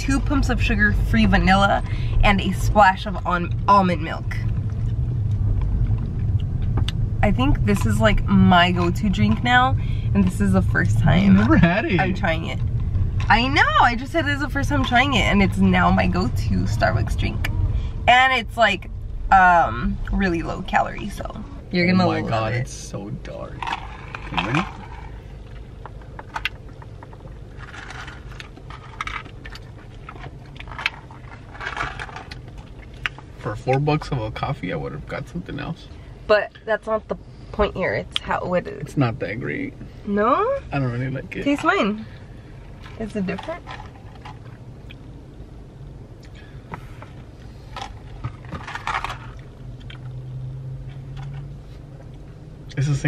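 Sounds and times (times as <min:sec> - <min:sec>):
car cabin rumble: 0:00.0 - 0:53.0.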